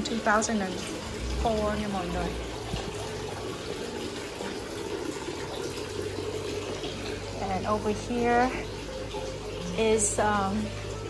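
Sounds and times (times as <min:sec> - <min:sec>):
fountain water splashing: 0:00.0 - 0:11.0.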